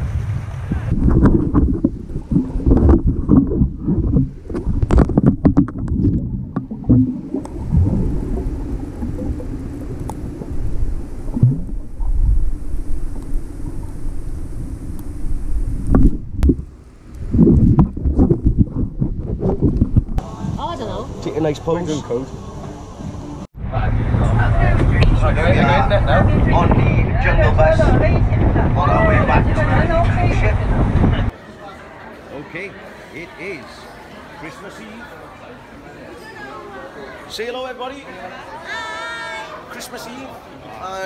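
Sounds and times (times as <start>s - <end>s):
muffled underwater rumble: 0.4s - 20.8s, 22.4s - 31.3s.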